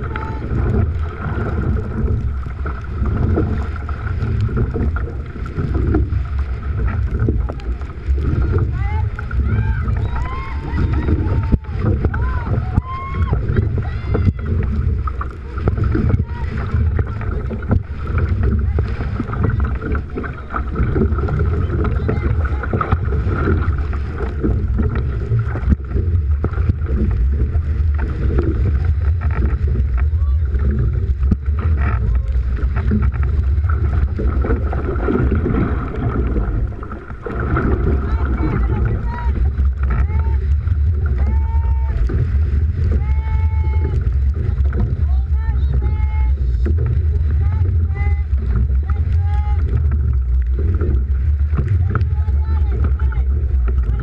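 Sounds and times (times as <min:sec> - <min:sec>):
water rushing and splashing: 0:00.0 - 0:54.0
wind buffeting microphone: 0:00.0 - 0:54.0.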